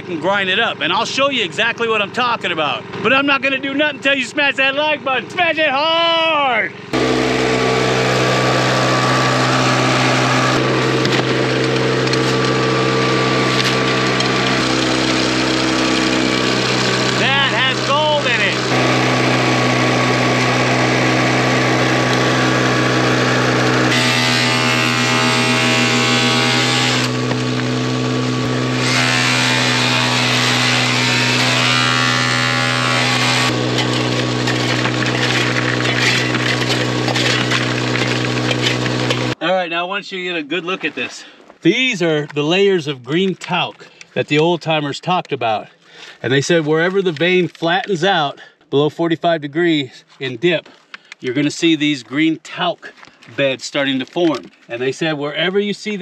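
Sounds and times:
small gasoline engine running: 2.0s - 5.3s, 6.7s - 39.4s
dirt fed through machine: 7.0s - 39.4s.

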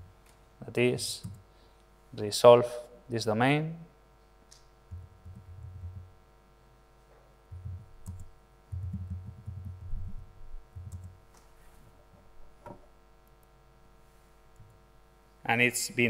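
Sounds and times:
laptop keyboard typing: 4.9s - 6.1s, 7.5s - 11.2s.

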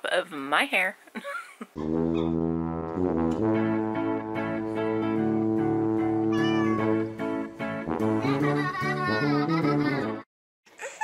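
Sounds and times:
cat meow sound effect: 6.3s - 7.0s.

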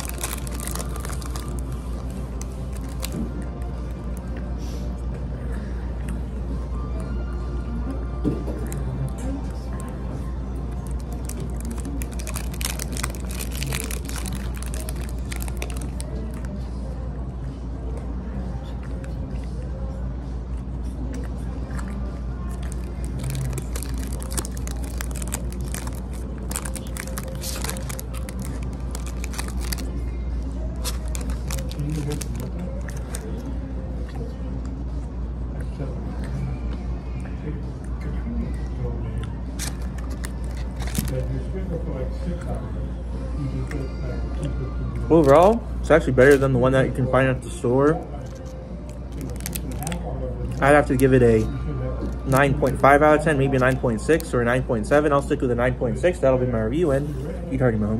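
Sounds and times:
crisp crunches: 0.0s - 3.2s, 10.8s - 16.5s, 22.5s - 30.0s, 30.8s - 33.5s, 39.6s - 41.3s, 48.2s - 51.1s
biting and chewing ice cream bar: 0.0s - 4.5s, 10.6s - 16.7s, 20.4s - 34.8s, 39.2s - 41.3s, 44.4s - 45.6s, 48.0s - 54.4s
steady low hum: 0.0s - 57.5s.

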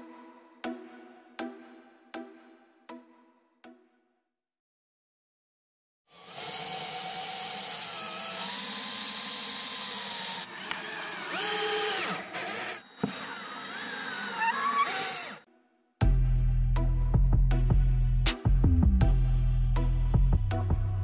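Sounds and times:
power drill motor whine: 6.1s - 15.5s.

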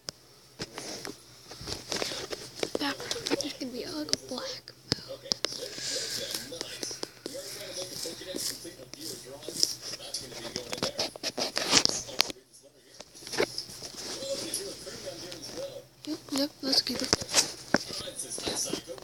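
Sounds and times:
indistinct voices talking: 2.0s - 19.0s.

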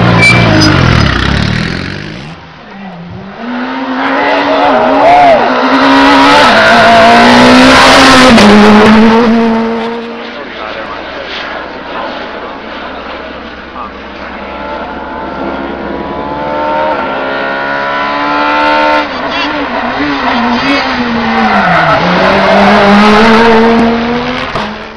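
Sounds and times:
rally car engine at full throttle: 0.0s - 24.9s.

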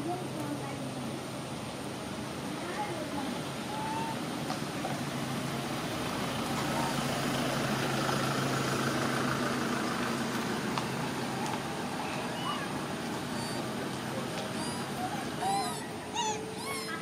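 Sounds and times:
vehicle engine running: 0.0s - 16.2s.

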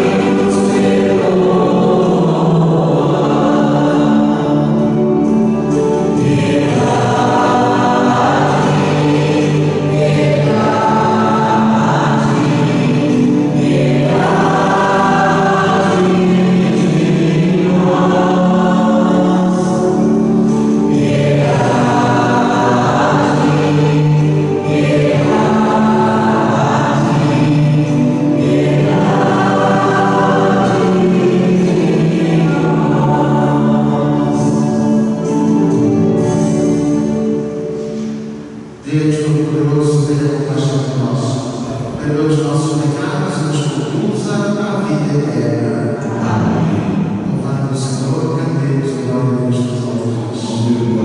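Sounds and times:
church choir singing hymn: 0.0s - 51.0s
sustained low accompaniment: 0.0s - 51.0s.

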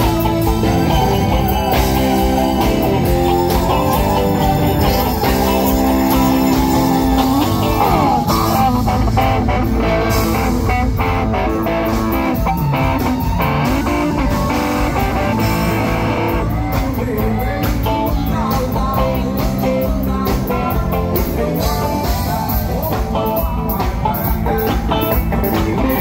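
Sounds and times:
electric guitar lead: 0.0s - 26.0s
rock band playing through pa: 0.0s - 26.0s.

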